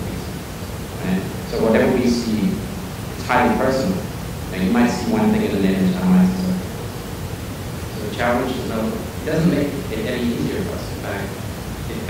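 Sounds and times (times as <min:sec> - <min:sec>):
background hiss: 0:00.0 - 0:12.0
man saying uhh: 0:01.0 - 0:02.6.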